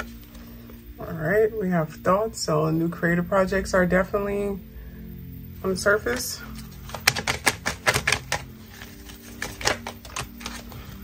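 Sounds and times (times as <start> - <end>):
cards being shuffled: 6.1 - 11.0.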